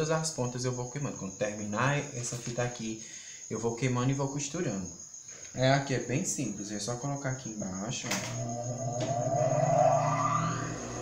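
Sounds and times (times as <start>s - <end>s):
steady low hum: 7.6s - 11.0s
motor whine rising in pitch: 8.1s - 11.0s.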